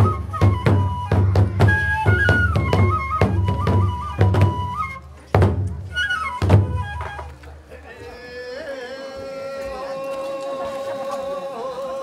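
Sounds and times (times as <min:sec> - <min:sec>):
bamboo flute descending phrase: 0:00.0 - 0:05.2, 0:05.8 - 0:07.4.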